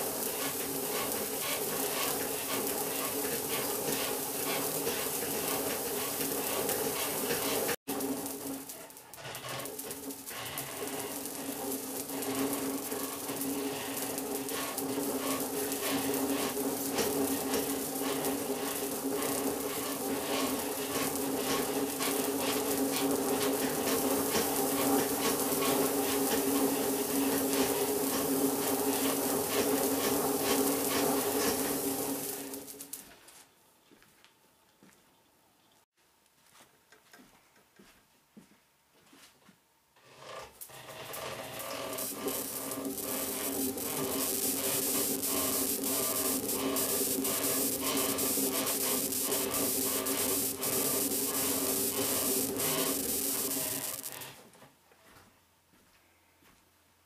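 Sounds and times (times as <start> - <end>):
electrostatic machine whirring: 0.0 - 33.0, 40.6 - 54.4
sizzling electric crackle: 0.0 - 33.2, 40.6 - 54.4.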